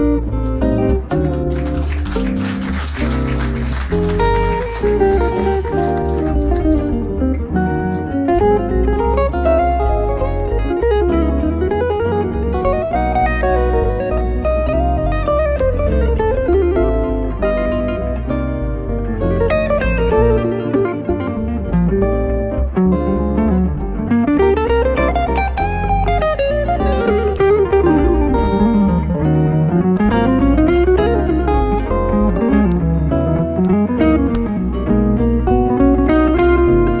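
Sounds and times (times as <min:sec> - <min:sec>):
jazz electric guitar duo: 0:00.0 - 0:37.0.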